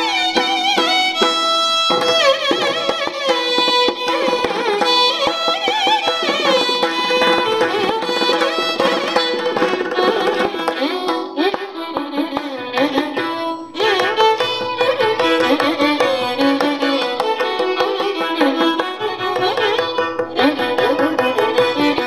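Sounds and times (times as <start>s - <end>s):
violin ensemble playing melody: 0.0s - 22.0s
drum strokes: 0.2s - 22.0s.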